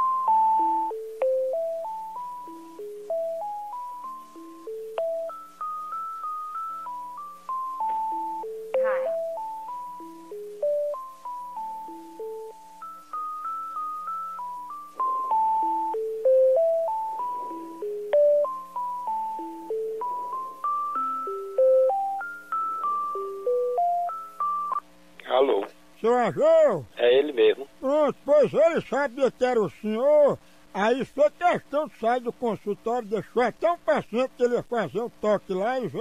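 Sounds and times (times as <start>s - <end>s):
electronic keyboard hold music: 0.0s - 25.0s.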